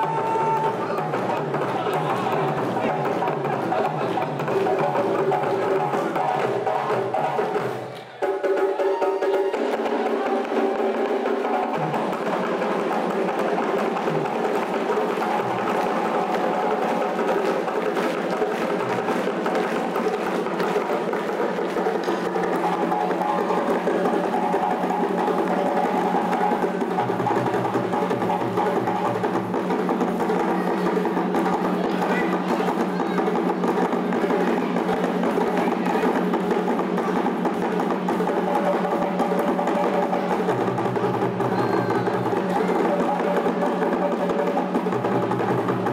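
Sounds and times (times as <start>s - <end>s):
hand drum ensemble playing: 0.0s - 45.9s.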